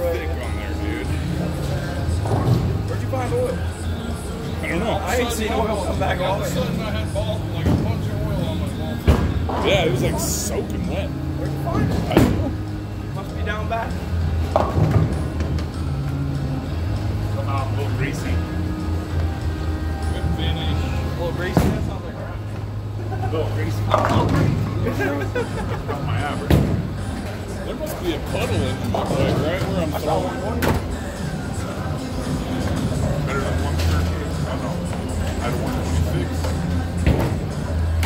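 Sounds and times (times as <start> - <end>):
chatter: 0.0 - 14.3, 20.0 - 38.0
background music: 0.0 - 38.0
bowling balls rolling: 14.3 - 16.0.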